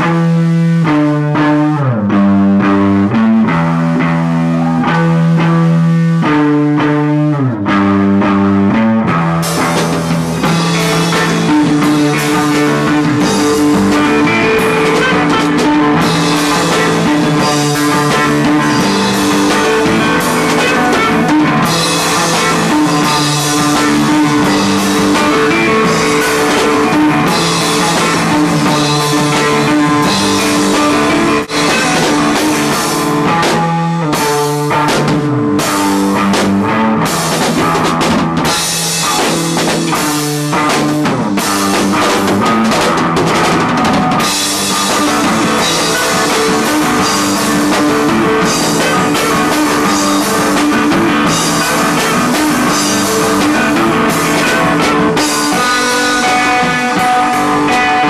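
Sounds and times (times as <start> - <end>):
electric guitar playing held notes: 0.0 - 58.0
rock band playing loudly: 0.0 - 58.0
drums and cymbals: 9.3 - 58.0.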